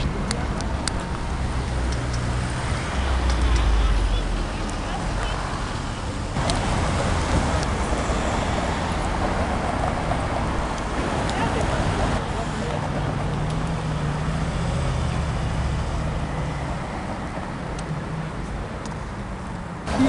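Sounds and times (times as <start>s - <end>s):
passing traffic: 0.0s - 20.0s.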